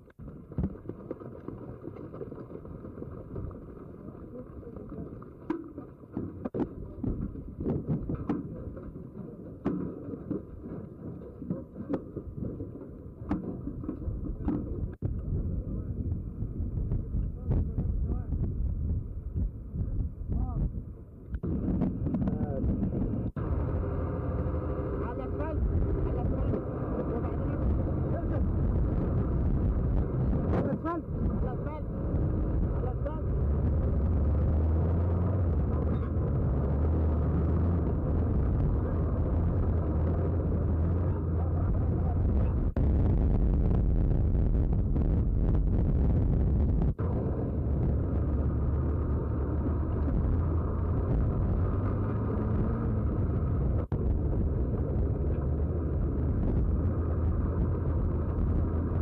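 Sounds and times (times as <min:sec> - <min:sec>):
truck engines rumbling: 0:21.4 - 0:43.2, 0:45.8 - 0:59.0
voices: 0:24.8 - 0:29.2, 0:29.9 - 0:33.9.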